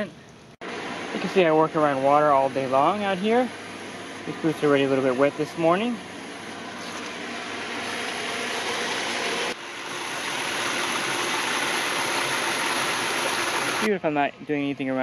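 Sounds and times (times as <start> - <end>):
water rushing over concrete: 8.9 - 13.9.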